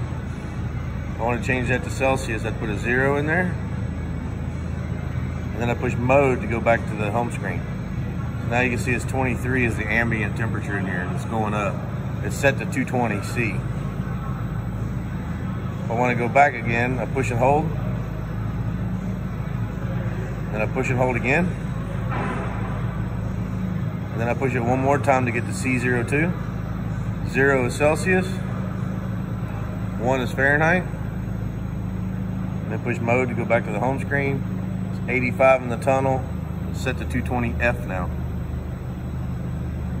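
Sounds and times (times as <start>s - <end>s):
machine hum: 0.0s - 40.0s.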